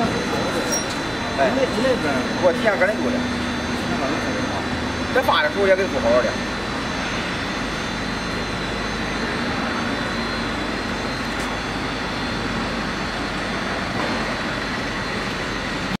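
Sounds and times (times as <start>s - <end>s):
faint high steady tones: 0.0s - 16.0s
workshop machinery running: 0.0s - 16.0s.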